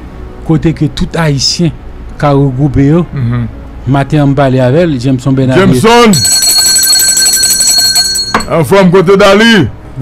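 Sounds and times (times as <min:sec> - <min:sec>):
high-pitched electronic ringing tone: 0:05.6 - 0:08.6.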